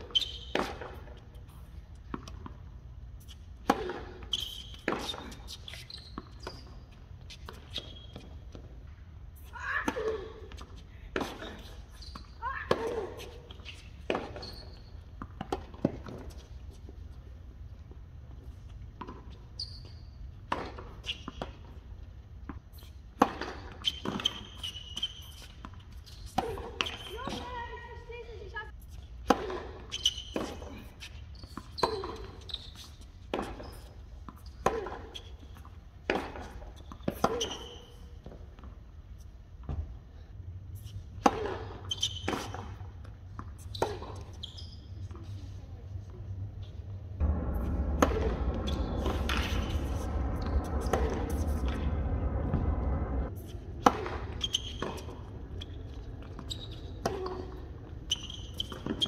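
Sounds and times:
tennis balls bouncing on court: 0.0 - 9.0, 9.8 - 16.9, 17.8 - 19.5, 20.4 - 28.6, 29.2 - 38.8, 41.2 - 45.4, 47.2 - 59.0
tennis ball bouncing: 1.9 - 2.7, 47.2 - 59.0
racket hitting tennis ball: 3.6 - 5.4, 29.2 - 30.7, 36.0 - 37.7, 41.2 - 44.3, 47.2 - 55.3.

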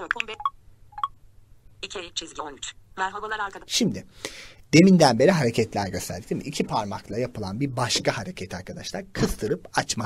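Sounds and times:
screen reader speech: 0.0 - 0.5.

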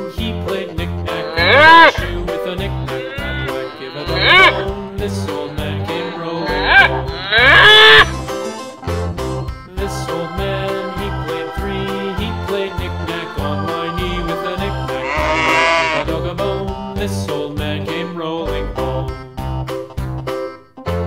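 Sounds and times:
cow mooing: 1.1 - 8.1, 15.0 - 16.1
background music with beat: 6.8 - 21.0.

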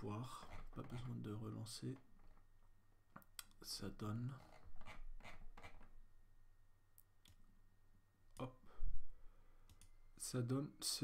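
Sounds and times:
computer mouse clicks: 9.7 - 9.9.

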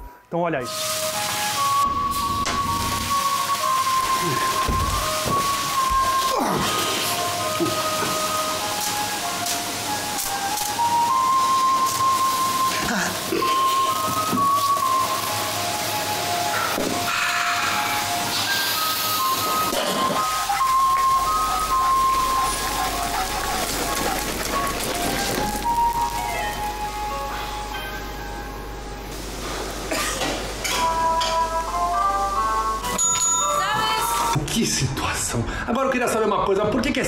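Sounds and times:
background music held notes: 0.0 - 34.4
steady hiss: 0.6 - 32.9.

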